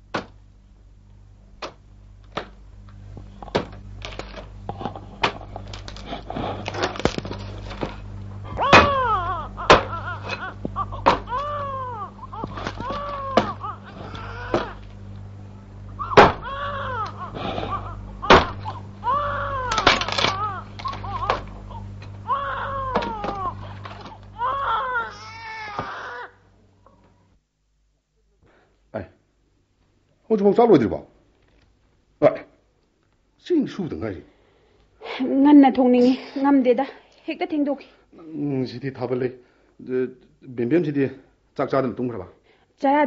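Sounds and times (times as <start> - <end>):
low tape hum: 0.0 - 43.0
loud falling cry: 8.4 - 14.8, 16.0 - 21.4, 22.2 - 23.8, 24.4 - 26.3.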